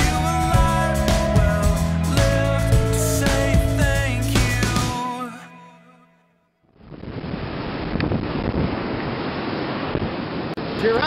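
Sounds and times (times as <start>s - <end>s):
wind on microphone: 6.8s - 10.8s.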